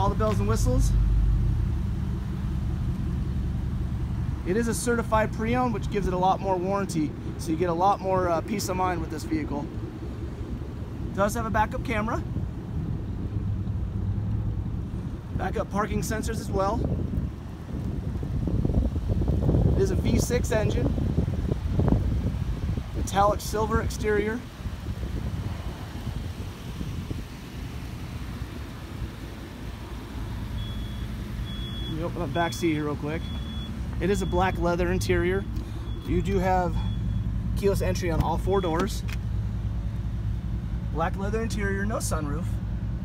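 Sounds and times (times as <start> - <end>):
low background rumble: 0.0 - 43.0
wind buffeting microphone: 11.7 - 30.5.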